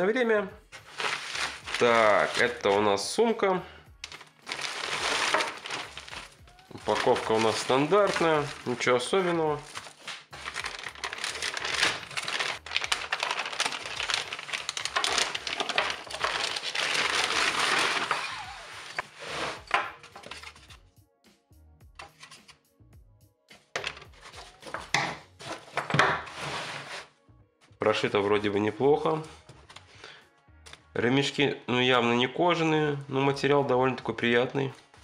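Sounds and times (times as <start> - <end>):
music playing: 0.0 - 25.5
canvas bag rustling: 0.8 - 2.9, 4.0 - 20.5
plastic bag crinkling: 0.8 - 2.9, 4.0 - 19.0.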